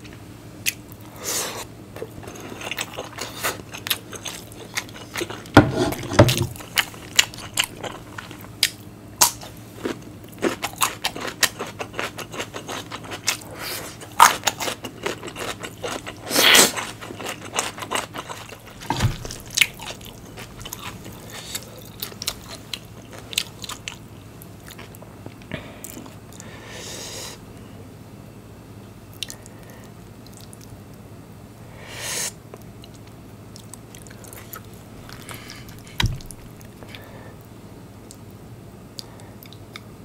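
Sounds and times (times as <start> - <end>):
wet chewing: 2.0 - 24.0, 32.8 - 37.1.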